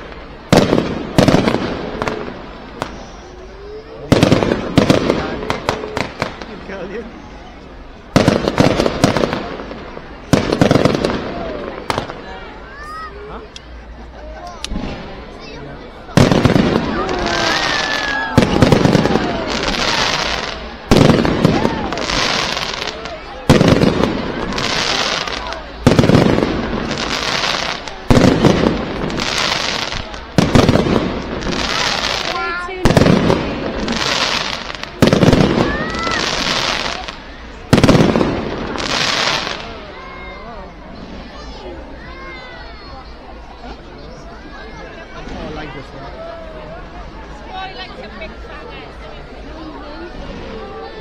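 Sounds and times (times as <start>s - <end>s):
fireworks bangs: 0.0s - 7.1s, 8.0s - 12.6s, 14.6s - 40.3s.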